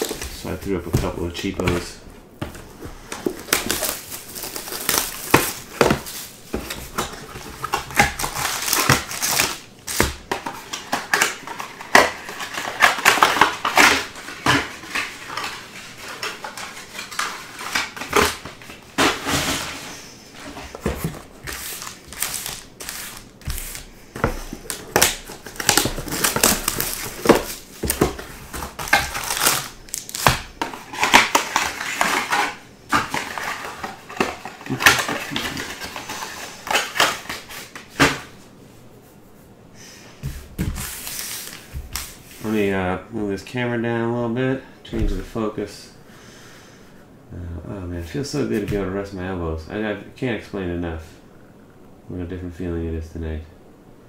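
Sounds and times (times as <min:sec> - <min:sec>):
foil wrappers rustling: 0:00.0 - 0:02.0, 0:02.8 - 0:38.1.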